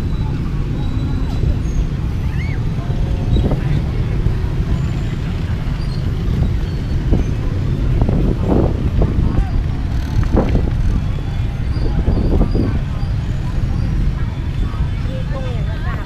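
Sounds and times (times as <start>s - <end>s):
motorbike and car traffic rumble: 0.0s - 16.0s
passers-by talking: 0.0s - 16.0s.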